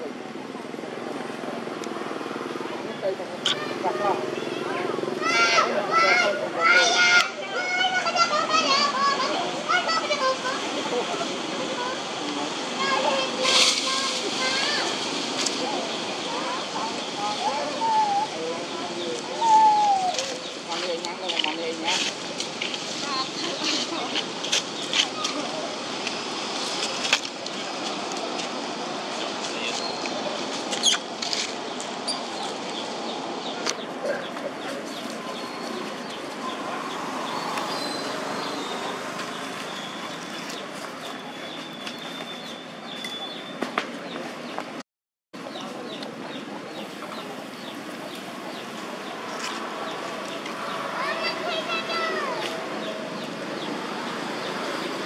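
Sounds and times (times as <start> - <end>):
steady outdoor hiss: 0.0 - 44.8, 45.4 - 55.0.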